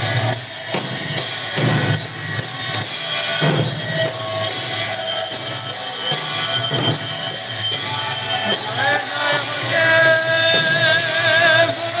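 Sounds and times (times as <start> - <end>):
bells ringing: 0.0 - 12.0
hand cymbals ringing: 0.0 - 12.0
steady drum beat: 0.0 - 12.0.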